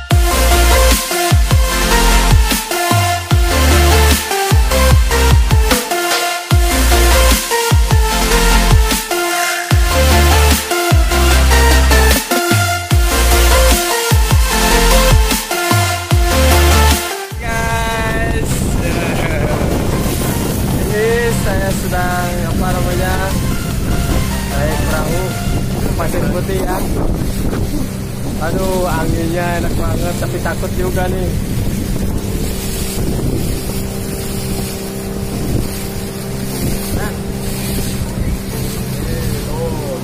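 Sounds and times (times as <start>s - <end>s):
boat motor running: 0.0s - 40.0s
water rushing past hull: 0.0s - 40.0s
wind on microphone: 16.3s - 40.0s
person's voice: 17.3s - 19.8s, 20.8s - 23.4s, 24.5s - 27.0s, 28.4s - 31.4s, 39.0s - 40.0s.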